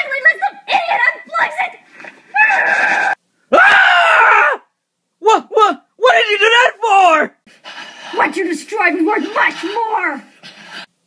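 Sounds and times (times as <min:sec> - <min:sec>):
person screaming: 0:02.3 - 0:05.7.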